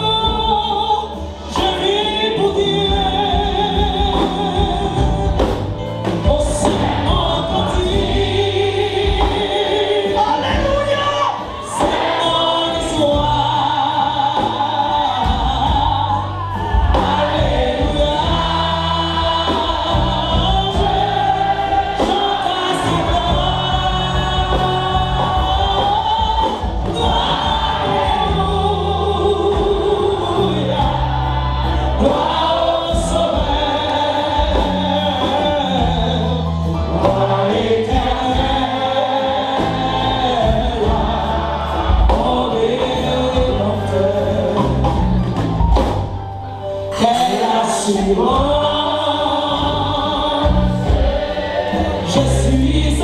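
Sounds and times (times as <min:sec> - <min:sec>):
woman singing gospel song: 0:00.0 - 0:45.1, 0:46.9 - 0:53.0
instrumental accompaniment: 0:00.0 - 0:53.0.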